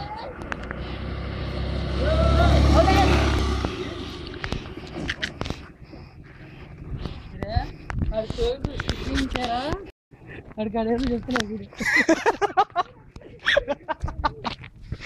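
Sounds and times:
motor scooter passing by: 0.0s - 5.2s.

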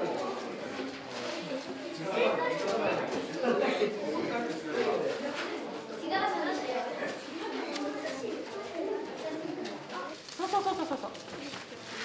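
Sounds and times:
low voices talking: 0.0s - 12.0s.

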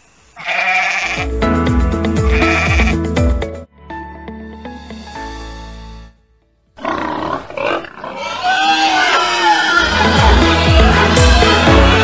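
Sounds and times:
background music: 1.0s - 7.2s, 9.7s - 12.0s
pig grunting and squealing: 6.8s - 11.5s.

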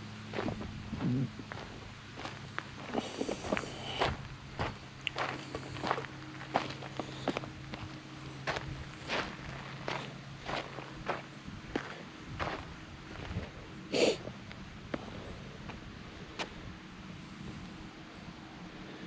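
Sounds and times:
footsteps on dirt and rock: 0.3s - 13.6s.

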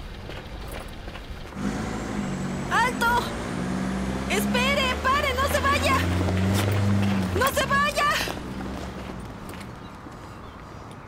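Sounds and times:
minibus engine running: 0.0s - 10.5s.

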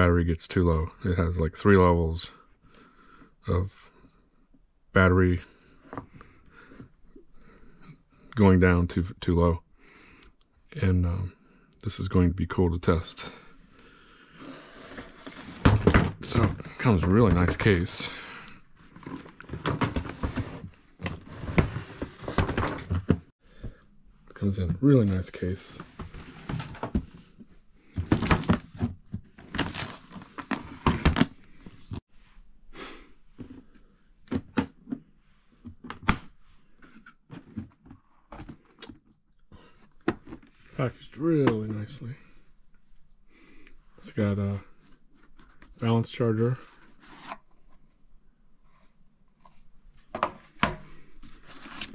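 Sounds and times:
man talking: 0.0s - 2.4s, 3.5s - 3.9s, 4.9s - 5.5s, 8.4s - 9.6s, 10.7s - 13.4s, 16.2s - 18.3s, 24.3s - 25.7s, 40.8s - 42.3s, 44.0s - 44.7s, 45.8s - 46.7s
carrying case rustling and scraping: 14.4s - 18.1s, 18.7s - 23.3s, 25.7s - 32.0s.

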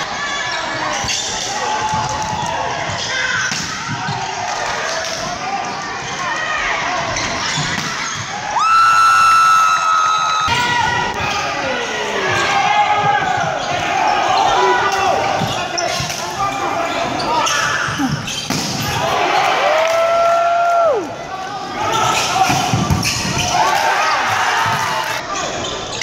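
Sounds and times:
players shouting: 0.0s - 25.7s.

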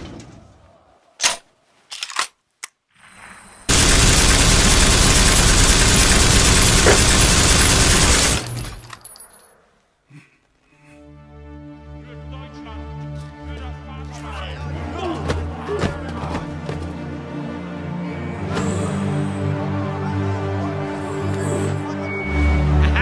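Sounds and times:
automatic gunfire: 3.7s - 8.8s.

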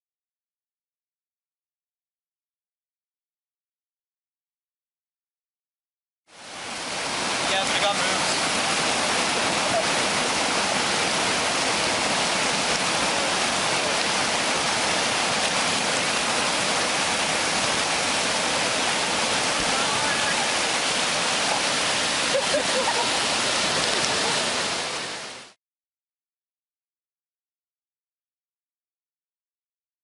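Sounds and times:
whitewater rapids rushing: 6.4s - 25.6s
faint voices: 19.5s - 20.7s.

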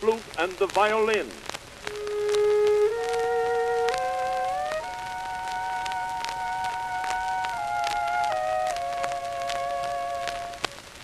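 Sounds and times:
record surface crackle: 0.0s - 11.0s
flute and violin playing: 1.8s - 10.8s.

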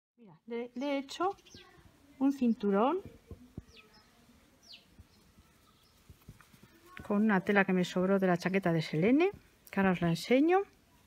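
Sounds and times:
bird chirping: 0.2s - 10.6s.

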